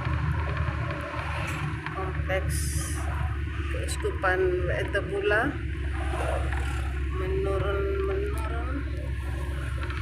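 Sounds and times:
engine and road noise: 0.0 - 10.0.

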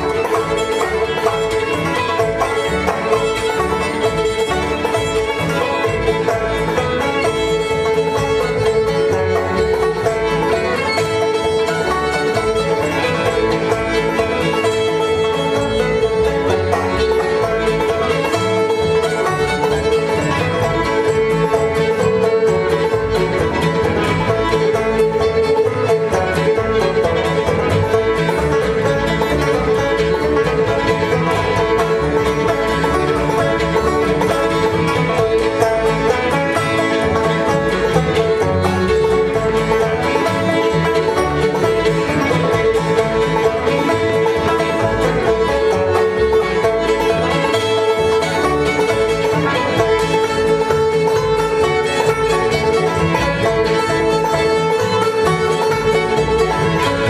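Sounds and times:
banjo: 0.0 - 57.0
fiddle: 0.0 - 57.0.

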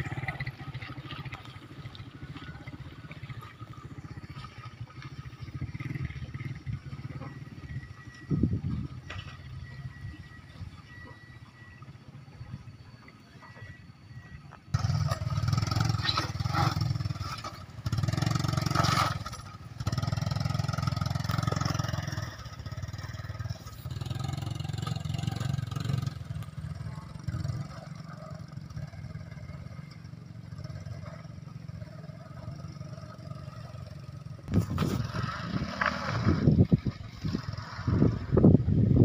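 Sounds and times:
motorcycle engine revving: 0.0 - 12.3, 14.0 - 39.0.

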